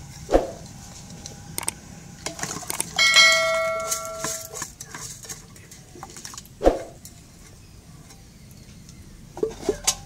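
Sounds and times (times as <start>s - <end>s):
bright bell ding: 3.0s - 4.5s.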